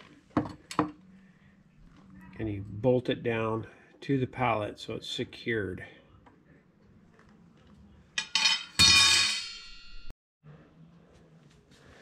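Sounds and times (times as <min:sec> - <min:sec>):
ringing metal clang: 0:08.2 - 0:10.1.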